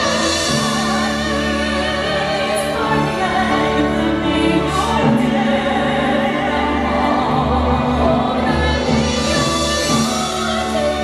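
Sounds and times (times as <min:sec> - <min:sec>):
orchestra playing sustained chords: 0:00.0 - 0:11.0
person singing with vibrato: 0:00.0 - 0:11.0.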